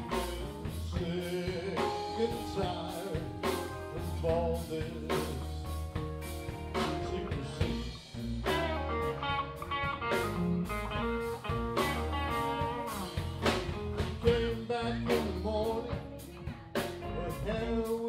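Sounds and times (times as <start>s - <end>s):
drum kit: 0.0s - 18.0s
electric bass: 0.0s - 18.0s
electric guitars: 0.0s - 18.0s.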